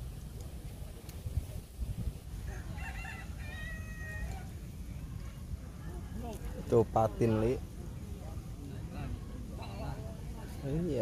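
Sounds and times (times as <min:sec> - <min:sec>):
rooster crowing: 0:02.4 - 0:04.5.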